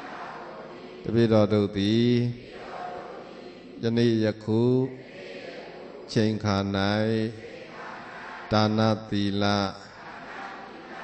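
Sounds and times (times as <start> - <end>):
man chanting verses: 0.6 - 10.0.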